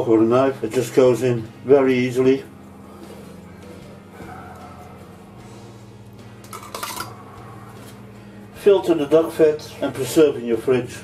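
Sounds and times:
metal tongs clinking on metal: 6.5 - 7.1.

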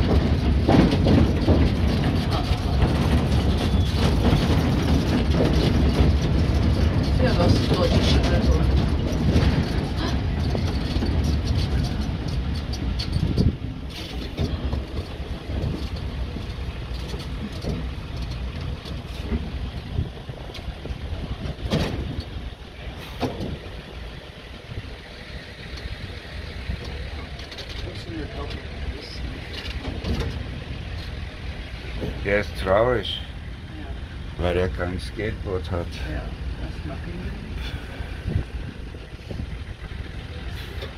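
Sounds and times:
low city rumble: 0.0 - 40.9.

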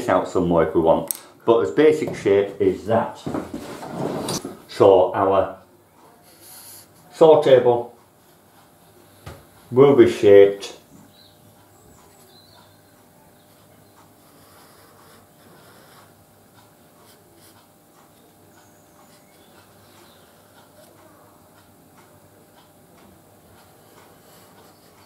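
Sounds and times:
low room hum: 0.0 - 25.0
marker rubbing on board: 14.2 - 16.2.

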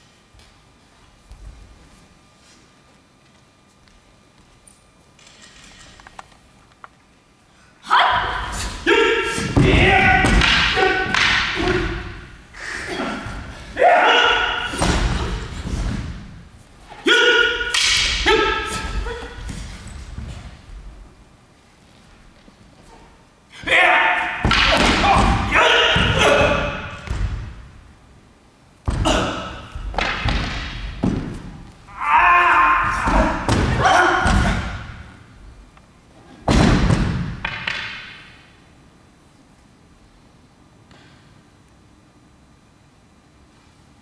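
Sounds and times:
loud battle cries: 7.8 - 15.5, 17.0 - 19.4, 23.6 - 27.0, 31.9 - 35.0
person shouting: 7.8 - 15.6, 16.9 - 19.5, 23.6 - 27.0, 31.9 - 34.9
practice swords striking: 7.9 - 20.7, 22.9 - 27.6, 28.9 - 35.2
wooden swords knocking: 9.4 - 12.2, 24.4 - 26.7, 37.3 - 38.4.

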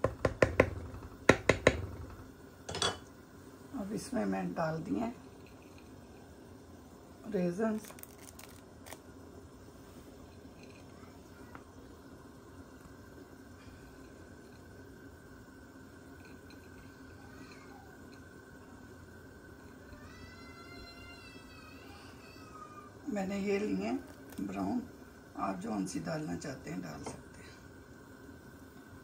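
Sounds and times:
faint background hum: 0.0 - 29.0.

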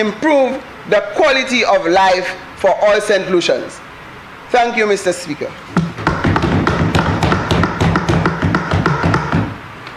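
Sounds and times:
hands thumping on wooden desks: 5.7 - 9.6.

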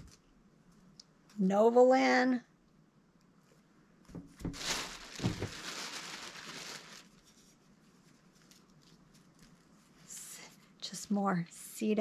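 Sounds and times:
plastic bag rustling: 4.2 - 10.1.

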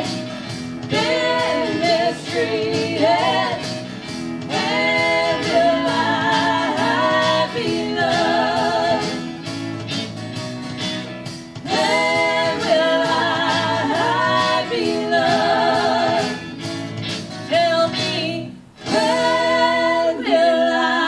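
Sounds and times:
instrumental backing music: 0.0 - 21.0
female vocal trio singing: 0.9 - 3.9, 4.5 - 9.2, 11.7 - 16.4, 17.5 - 21.0.

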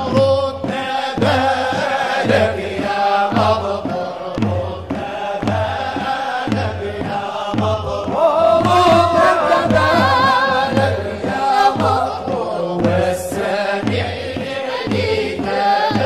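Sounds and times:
group singing a chant: 0.0 - 16.0
steady low beat: 0.0 - 16.0.

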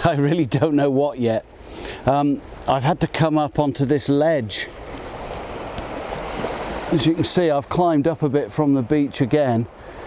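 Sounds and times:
waves washing over pebbles: 0.1 - 10.0.

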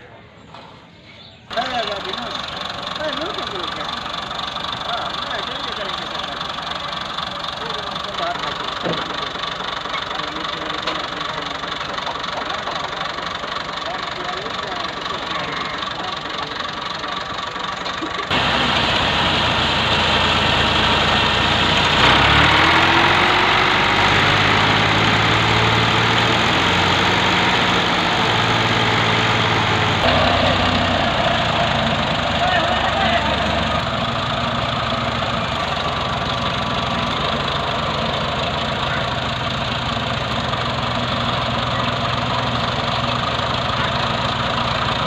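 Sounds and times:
tractor diesel engine running: 1.4 - 45.0.

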